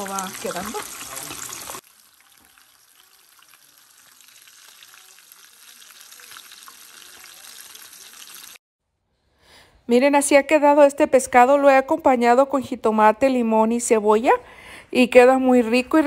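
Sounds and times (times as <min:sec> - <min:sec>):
fish sizzling in hot oil: 0:00.0 - 0:08.6.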